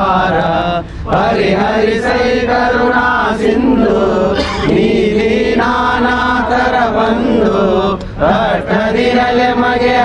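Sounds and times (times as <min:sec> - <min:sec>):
devotional chant singing: 0:00.0 - 0:10.0.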